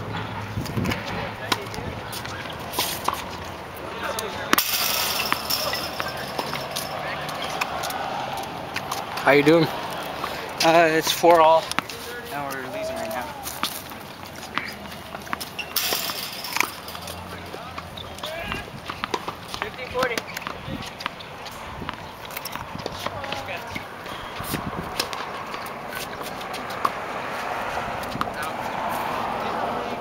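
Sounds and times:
background voices: 0.1 - 19.7
tennis balls struck and bouncing: 0.1 - 30.0.

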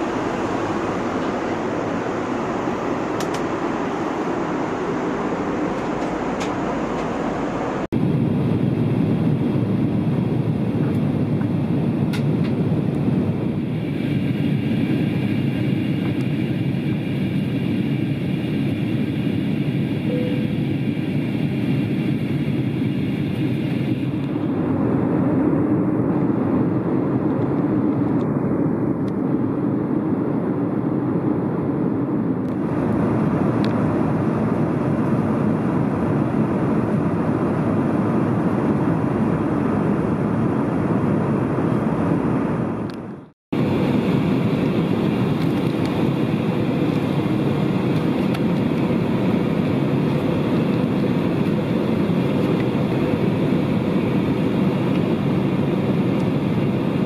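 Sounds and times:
airplane cabin noise: 0.0 - 57.0
faint high whine: 13.8 - 24.6.

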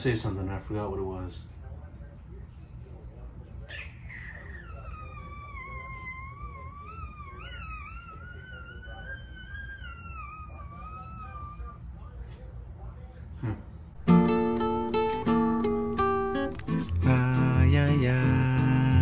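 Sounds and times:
small dog whining: 3.7 - 12.0.

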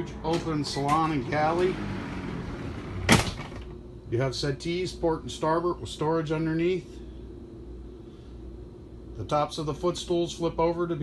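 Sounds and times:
steady low hum: 0.0 - 11.0
sharp thump: 3.0 - 3.7.

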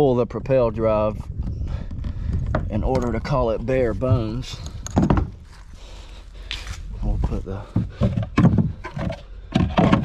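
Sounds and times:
plastic hatch cover knocks and scrapes: 4.9 - 5.4, 7.6 - 10.0.

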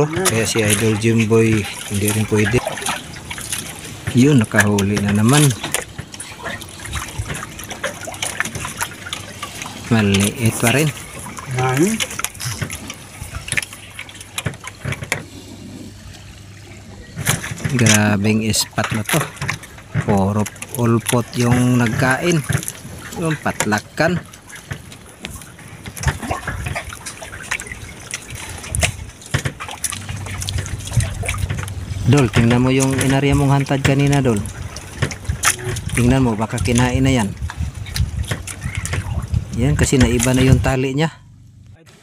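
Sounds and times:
water lapping against boat: 0.0 - 42.0
knocks and clicks from line handling: 0.1 - 11.4, 12.0 - 15.3, 18.8 - 27.6, 28.4 - 37.0.

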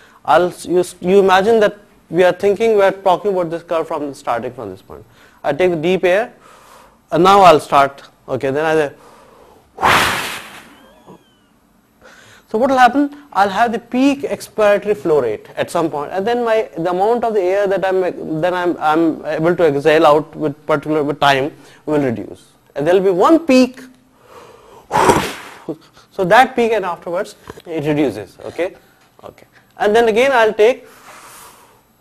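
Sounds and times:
man blowing out breath: 24.3 - 25.7
faint breath intake: 30.8 - 32.0.

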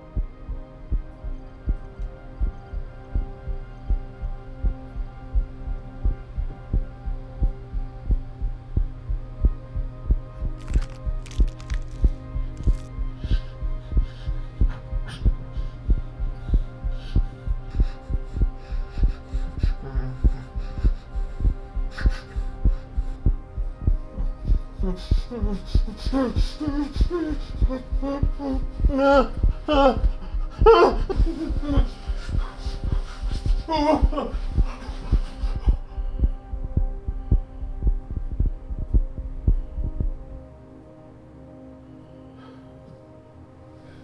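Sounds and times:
heartbeat thumps: 0.0 - 40.5
low drone: 0.0 - 44.0.

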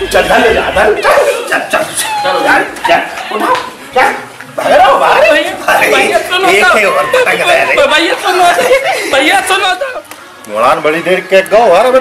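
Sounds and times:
men yelping and shouting: 0.0 - 10.1.

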